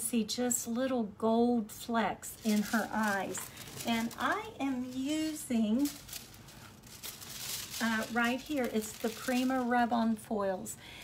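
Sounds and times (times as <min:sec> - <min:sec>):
woman speaking: 0:00.0 - 0:06.1, 0:07.8 - 0:10.8
foil packet crinkling: 0:02.4 - 0:10.4.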